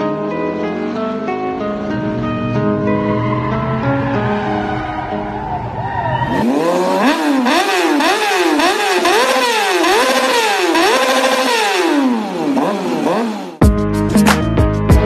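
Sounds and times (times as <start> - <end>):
guitar music: 0.0 - 6.4
car engine revving: 0.3 - 13.6.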